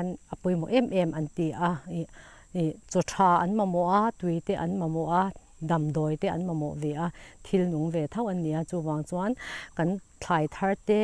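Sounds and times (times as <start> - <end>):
faint high-pitched whine: 0.0 - 11.0
woman speaking: 0.0 - 11.0.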